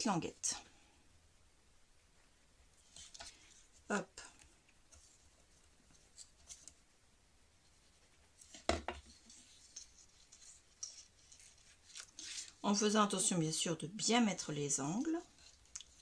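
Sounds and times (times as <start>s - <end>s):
card rustling and scraping: 2.8s - 3.7s, 4.9s - 6.8s, 7.9s - 12.6s.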